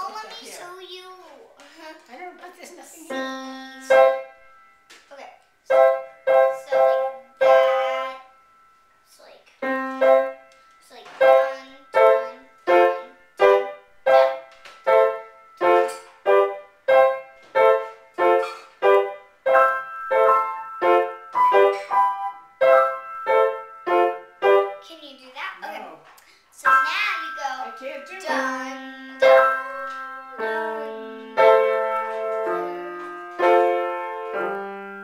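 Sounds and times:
grand piano chords: 2.7 - 5.0, 5.6 - 24.9, 26.6 - 35.0.

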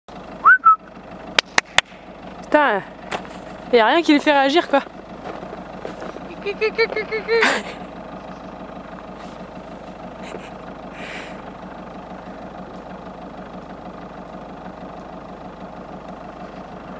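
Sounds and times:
steady engine-like hum: 0.1 - 16.9
person laughing: 6.3 - 7.9, 10.2 - 11.4.

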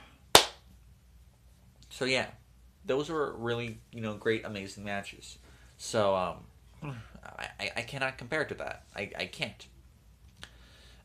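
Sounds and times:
sharp hand clap: 0.3 - 0.7.

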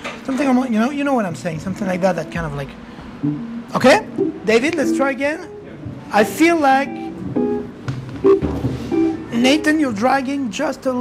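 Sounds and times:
jazz group playing: 1.7 - 10.2
piano: 1.8 - 10.1
plucked double bass: 3.2 - 5.1.

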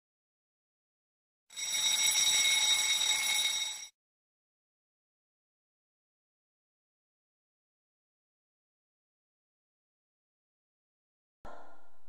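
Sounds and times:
timer alarm ringing: 1.5 - 4.0.

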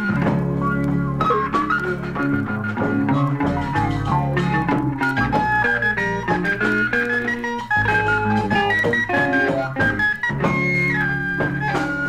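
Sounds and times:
continuous bass: 0.0 - 12.0
electric guitar: 0.0 - 12.0
keyboard lines: 0.0 - 12.0.

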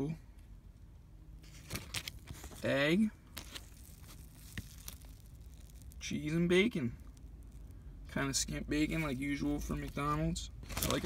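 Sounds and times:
paper wrapper crinkling and rustling: 1.4 - 6.1, 8.8 - 11.0.

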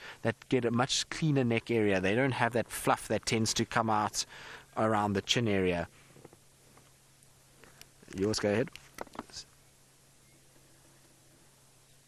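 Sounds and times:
faint low hum: 0.0 - 12.0
light hiss: 0.0 - 12.0.

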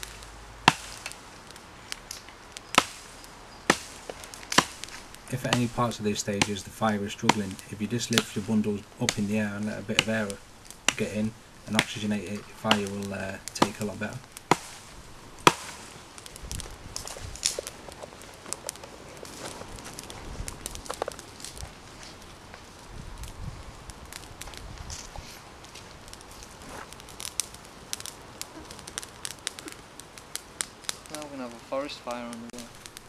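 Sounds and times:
campfire crackling: 0.0 - 33.0
sharp fire pops: 0.0 - 33.0.

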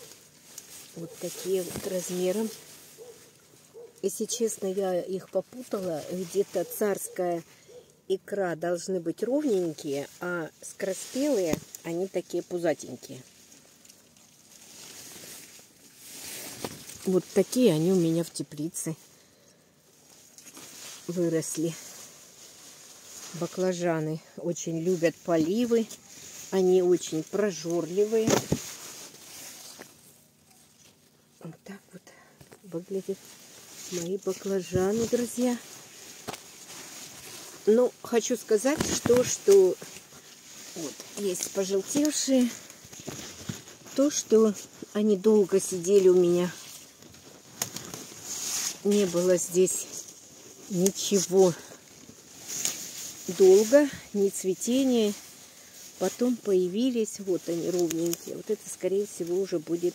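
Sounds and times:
light rustling of foliage: 0.0 - 59.9
woman speaking: 1.0 - 2.6, 4.0 - 7.5, 8.1 - 13.3, 17.0 - 19.0, 21.1 - 22.0, 23.3 - 28.6, 31.4 - 35.7, 37.6 - 39.9, 40.7 - 42.6, 43.9 - 46.7, 48.8 - 50.1, 50.7 - 51.8, 53.2 - 55.2, 56.0 - 59.9.

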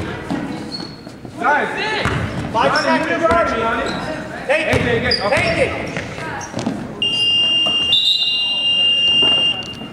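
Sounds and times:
scoreboard buzzer tones: 7.0 - 9.9.

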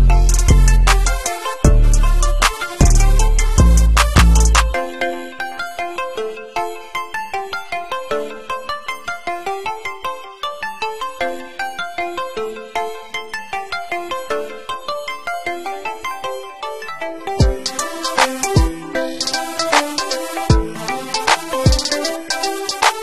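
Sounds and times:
synth pluck melody: 0.0 - 23.0.

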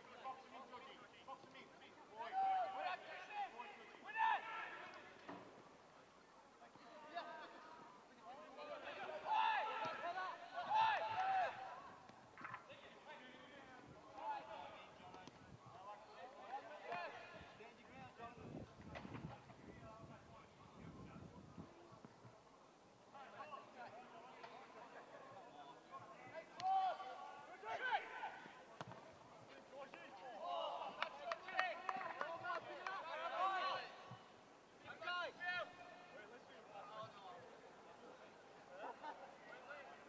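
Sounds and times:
distant shouts of players: 8.5 - 12.1, 26.4 - 28.9.

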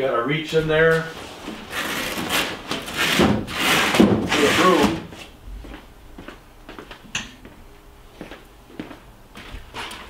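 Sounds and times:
truck bed cover scraping: 0.8 - 5.1.

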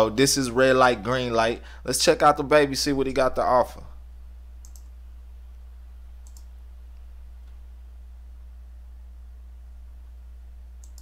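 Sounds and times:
low electrical hum: 0.0 - 11.0
computer mouse clicks: 4.6 - 5.0, 6.2 - 7.6, 10.8 - 11.0.

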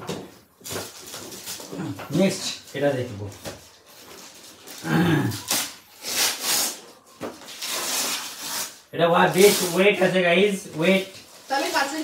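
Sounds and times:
wrapping paper rustling and tearing: 0.6 - 12.0.

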